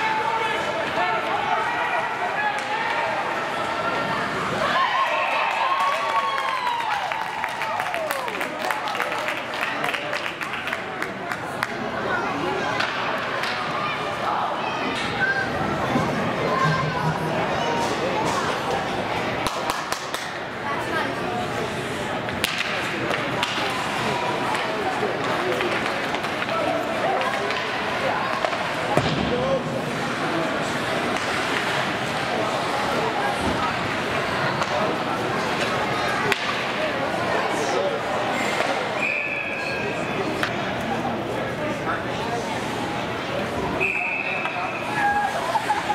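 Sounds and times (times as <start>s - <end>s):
players and spectators chattering: 0.0s - 45.9s
referee's whistle: 39.0s - 39.8s, 43.8s - 44.8s.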